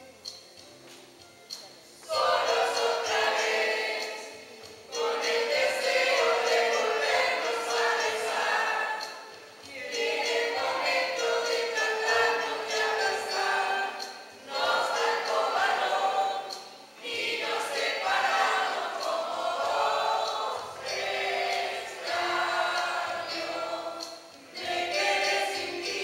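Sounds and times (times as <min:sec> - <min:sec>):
choir singing: 0:02.0 - 0:26.0.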